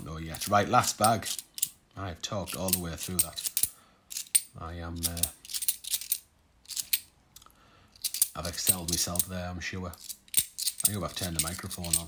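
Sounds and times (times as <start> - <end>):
coins clinking: 2.5 - 7.1, 8.0 - 9.3, 10.0 - 12.0.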